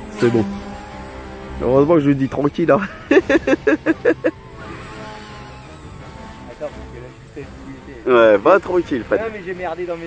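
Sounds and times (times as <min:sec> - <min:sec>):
rc helicopter motor whine: 0:00.0 - 0:10.0.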